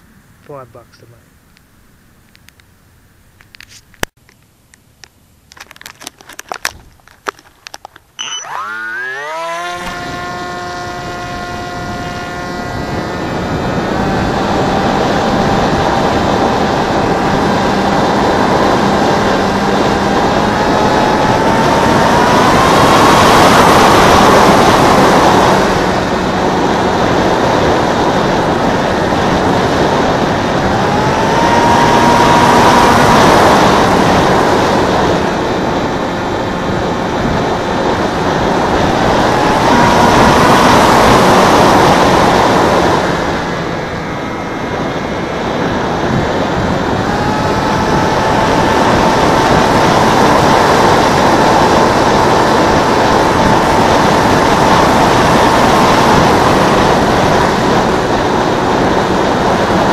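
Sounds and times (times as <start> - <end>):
electric motor whine: 6.4 - 59.9.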